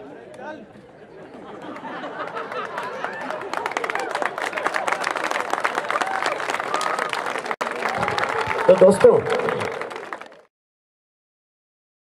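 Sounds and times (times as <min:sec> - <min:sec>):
audience clapping: 0:01.7 - 0:10.5.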